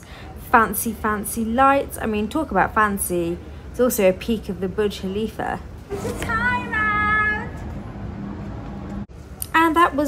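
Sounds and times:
steady low hum: 3.3s - 9.4s.

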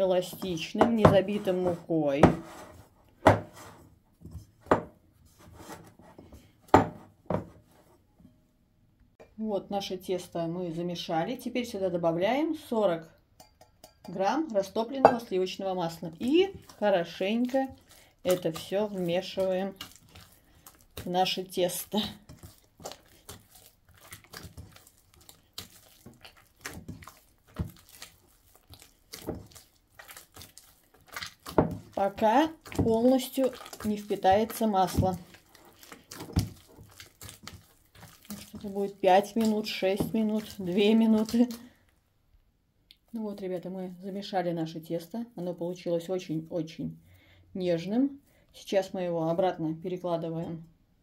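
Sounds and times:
faint rubbing of dough: 0.1s - 8.1s, 16.0s - 41.8s.

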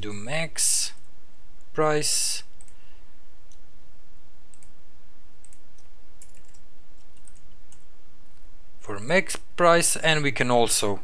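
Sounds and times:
steady low hum: 0.0s - 11.0s
computer keyboard clicks: 5.4s - 7.8s.

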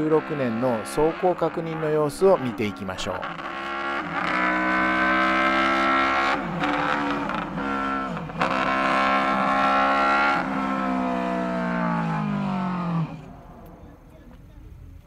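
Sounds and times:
high-pitched motorcycle exhaust: 0.0s - 13.6s.

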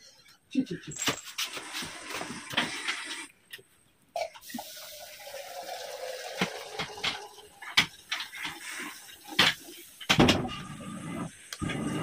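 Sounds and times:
water pouring into a pot: 4.4s - 10.0s.

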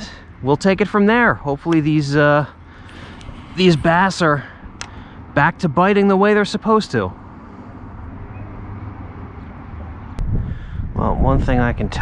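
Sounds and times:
distant rumble: 2.5s - 5.8s
wind on microphone: 10.2s - 12.0s.

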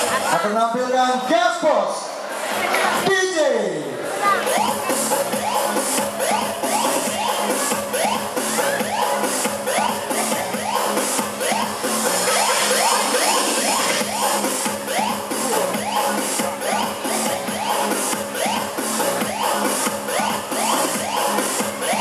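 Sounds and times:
electronic dance music: 0.0s - 22.0s.

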